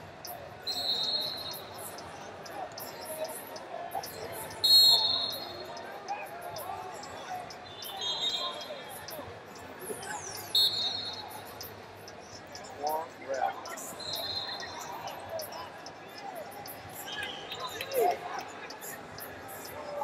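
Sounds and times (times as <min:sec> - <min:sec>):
faint distant voices: 0:00.0 - 0:20.0
short high whistle blasts: 0:04.6 - 0:05.5.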